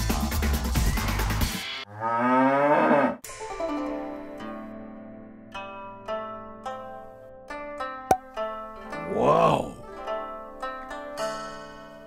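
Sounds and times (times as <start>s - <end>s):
cow mooing: 1.9s - 3.2s
plucked string notes: 3.4s - 12.0s.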